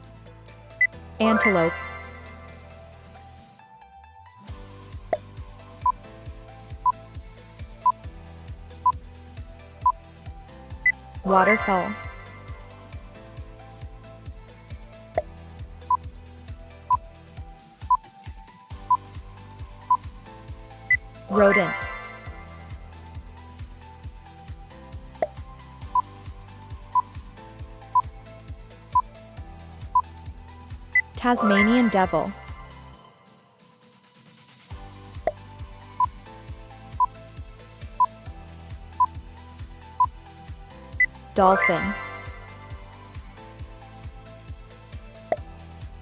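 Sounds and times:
light background music: 0.0s - 46.0s
short electronic beeps: 0.8s - 2.4s
countdown timer beeping: 0.8s - 2.6s, 10.8s - 12.7s, 20.9s - 22.8s, 31.0s - 32.8s, 41.0s - 42.9s.

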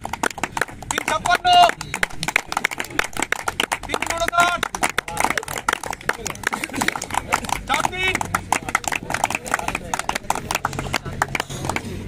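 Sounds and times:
people clapping hands: 0.0s - 12.0s.

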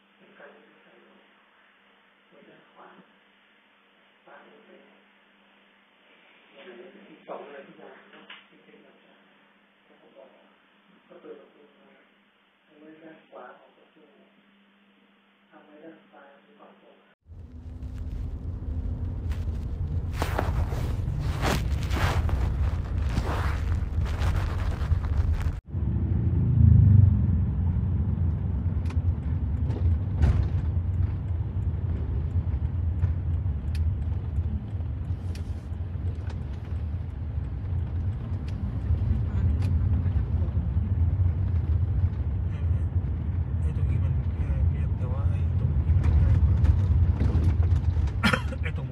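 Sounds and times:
van road and engine rumble: 17.3s - 48.9s.

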